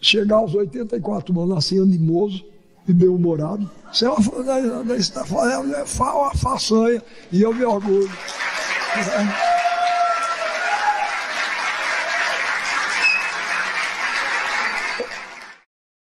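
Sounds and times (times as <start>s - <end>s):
audience applauding: 6.4s - 15.7s
voices cheering: 7.6s - 15.5s.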